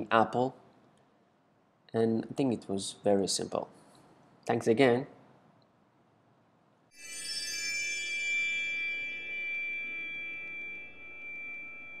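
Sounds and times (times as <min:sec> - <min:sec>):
bell-like chord ringing: 0:06.9 - 0:12.0.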